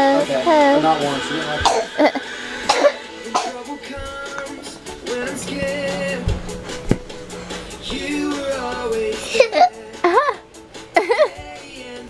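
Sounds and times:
faint music: 0.0s - 12.0s
person coughing: 1.7s - 3.7s.

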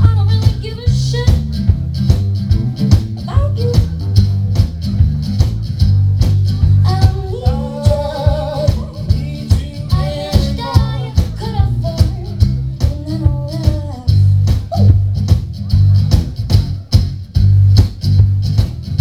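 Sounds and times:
acoustic guitar: 0.0s - 19.0s
bass guitar: 0.0s - 19.0s
drum beat: 0.0s - 19.0s
person singing: 6.8s - 15.0s.

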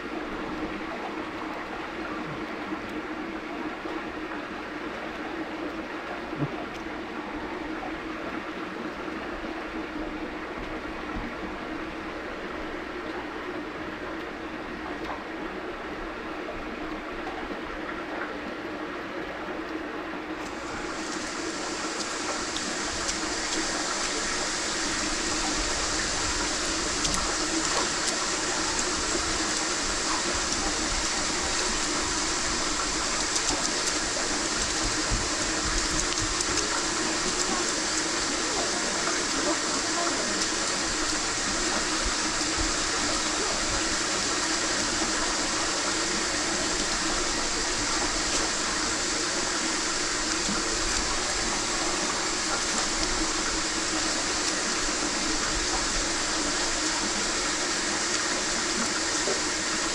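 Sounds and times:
water rushing: 0.0s - 59.9s.

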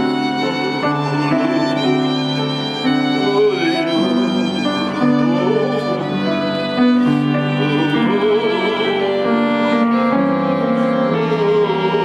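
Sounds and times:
piano chords: 0.0s - 12.0s
violin melody: 0.0s - 12.0s.

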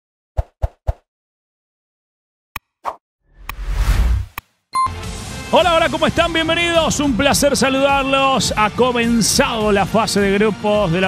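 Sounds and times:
whoosh: 3.3s - 4.4s.

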